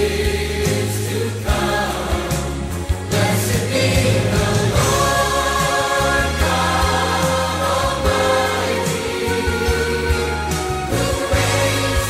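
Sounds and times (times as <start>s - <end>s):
choir singing: 0.0s - 12.0s
instrumental accompaniment with bass: 0.0s - 12.0s.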